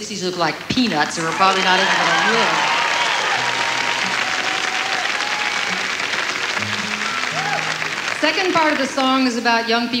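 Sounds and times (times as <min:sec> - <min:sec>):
audience applauding: 0:00.5 - 0:09.4.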